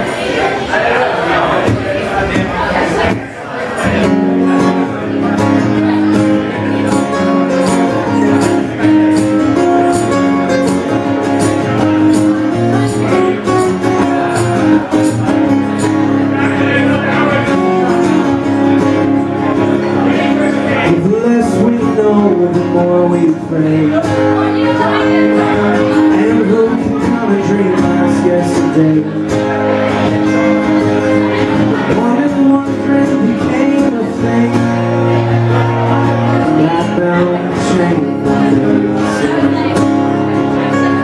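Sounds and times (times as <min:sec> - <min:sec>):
two acoustic guitars playing: 0:00.0 - 0:41.0.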